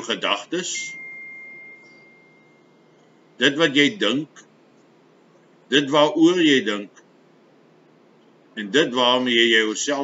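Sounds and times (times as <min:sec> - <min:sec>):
high pure ringing tone: 0:00.0 - 0:04.4.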